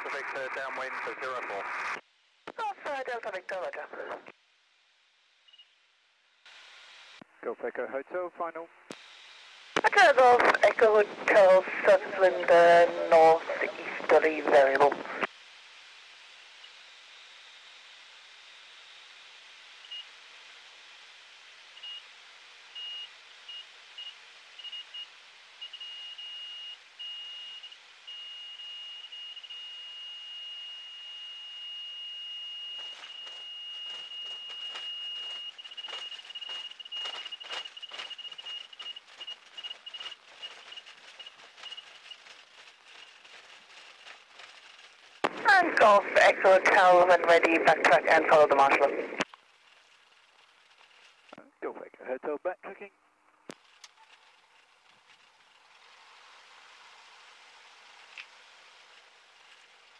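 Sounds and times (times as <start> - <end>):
stall-warning beep: 22.8 - 41.9
wheels rattling over rough grass: 32.8 - 45.3, 49.2 - 51.4, 53.6 - 59.9.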